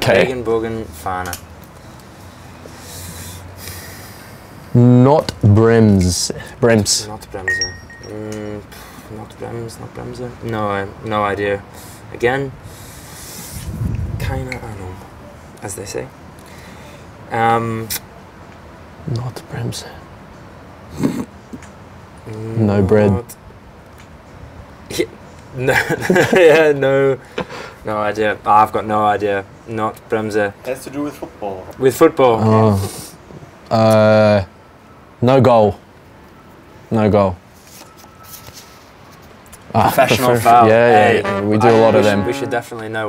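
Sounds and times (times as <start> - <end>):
man snorting laughter: 20.9 - 21.3.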